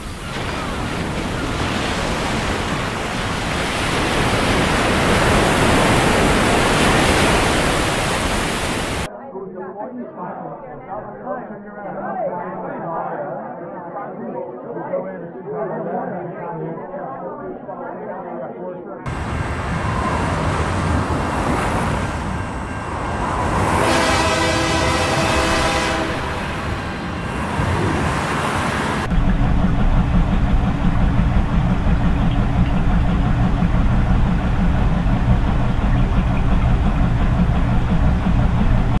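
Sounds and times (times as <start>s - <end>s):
washing machines and dryers rumbling: 0.0s - 9.1s, 19.1s - 39.0s
echoing murmur of voices: 9.1s - 19.1s
loud rushing noise with held tone: 19.1s - 29.2s.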